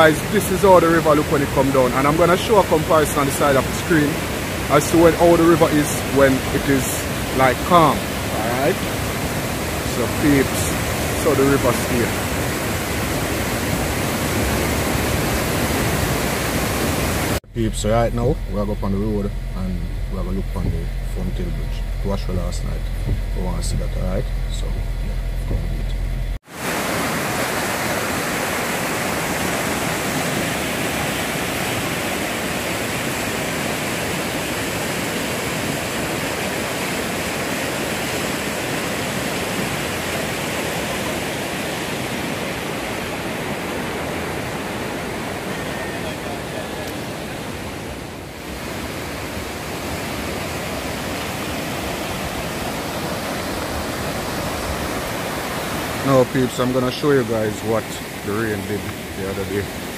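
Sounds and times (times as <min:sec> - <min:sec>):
floodwater rushing: 0:00.0 - 0:59.9.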